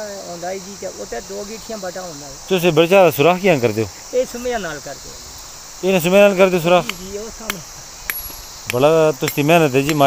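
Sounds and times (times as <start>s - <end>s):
men talking: 0.0s - 8.0s, 8.6s - 10.0s
crickets chirring: 0.0s - 10.0s.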